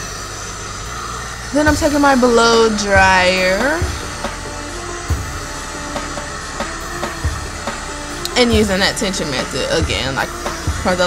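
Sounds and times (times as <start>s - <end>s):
hair dryer blowing: 0.0s - 11.0s
music with steady drum beat: 1.6s - 11.0s.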